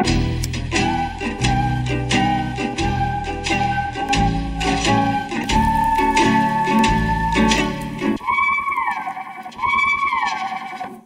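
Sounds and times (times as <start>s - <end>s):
sampled melodic line swooping: 0.4s - 10.8s.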